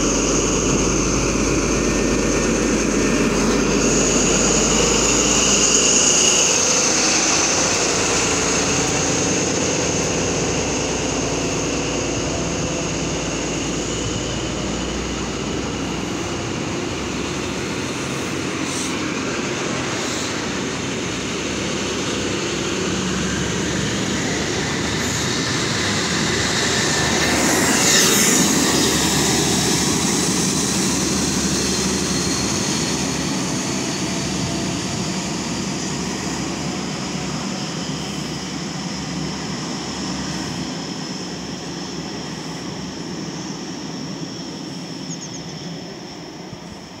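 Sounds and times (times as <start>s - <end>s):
high whine: 0.0s - 47.0s
train coaches rumbling on rails: 0.0s - 47.0s.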